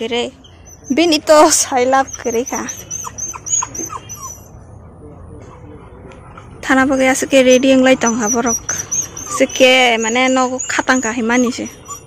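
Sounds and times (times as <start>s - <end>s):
puppy whimpering: 0.4s - 4.8s, 6.4s - 12.0s.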